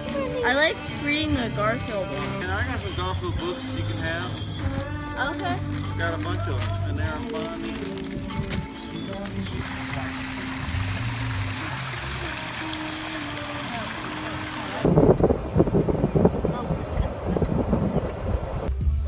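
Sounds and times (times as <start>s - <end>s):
music with held notes: 0.0s - 14.4s
wind buffeting microphone: 14.8s - 18.7s.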